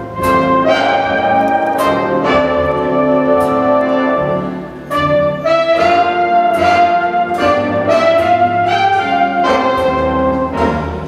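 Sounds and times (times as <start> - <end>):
jazz big band ballad: 0.0 - 11.0.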